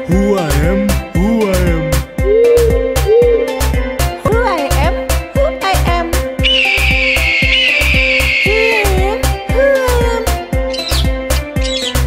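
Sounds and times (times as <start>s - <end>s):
eagle screech: 6.4s - 8.9s
dance music with drum beat: 6.4s - 9.6s.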